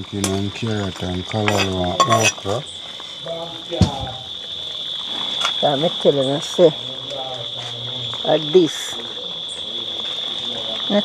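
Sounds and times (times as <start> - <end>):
high-pitched insect drone: 0.0 - 11.0
metal spoon clinking on pot: 1.5 - 2.5
woman talking: 5.6 - 6.8, 8.2 - 9.0.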